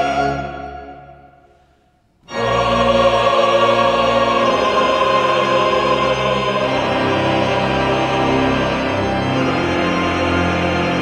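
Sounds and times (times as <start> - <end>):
choir singing: 0.0 - 1.4, 2.2 - 11.0.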